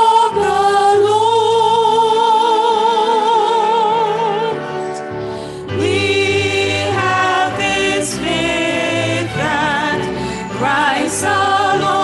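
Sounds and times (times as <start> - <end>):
women singing sacred song: 5.8 - 12.0.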